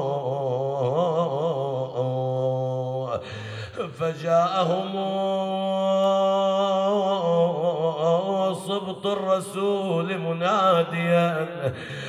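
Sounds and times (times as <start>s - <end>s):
man chanting in held notes: 0.0s - 12.0s.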